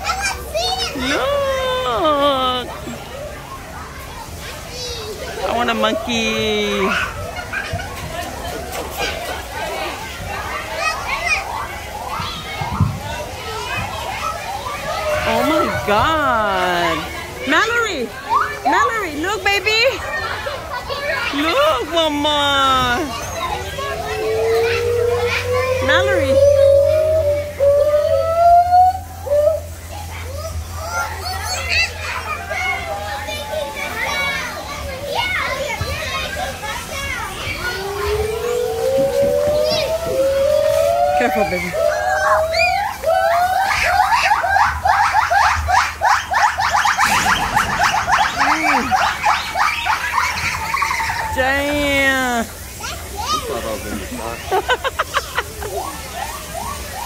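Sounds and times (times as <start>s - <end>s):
gibbons hooting and whooping: 0.0s - 57.0s.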